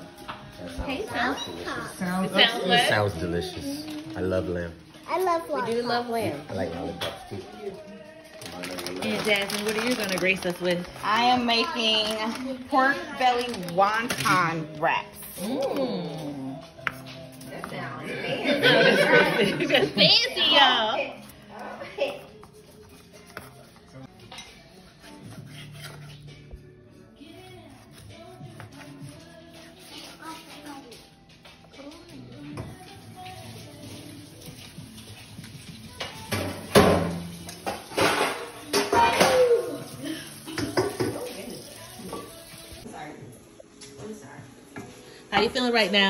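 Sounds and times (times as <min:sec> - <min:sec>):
dishes and pans clattering: 0:36.0 - 0:39.5, 0:40.5 - 0:41.4.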